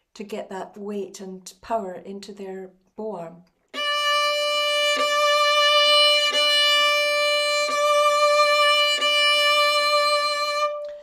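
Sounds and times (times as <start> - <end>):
violin sustained note: 3.8 - 11.0.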